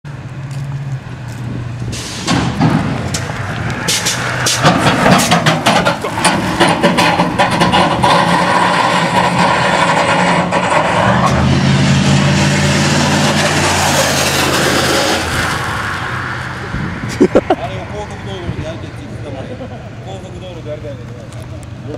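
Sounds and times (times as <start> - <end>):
car engines revving high: 0.1 - 21.9.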